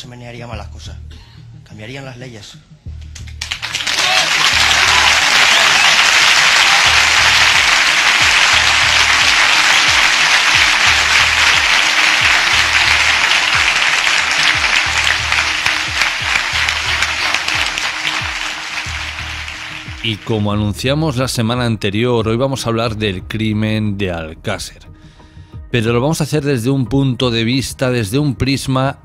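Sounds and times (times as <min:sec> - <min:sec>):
background music with low beat: 0:00.0 - 0:29.0
crowd applauding: 0:03.1 - 0:20.8.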